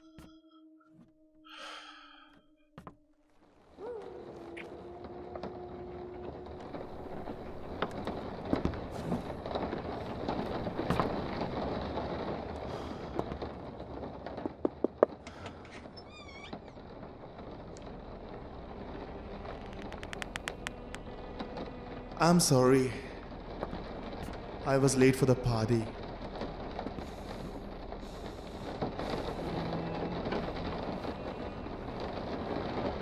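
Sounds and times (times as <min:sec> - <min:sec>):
door creaking open: 0:15.2 - 0:21.8
fast run of ticks: 0:19.6 - 0:21.0.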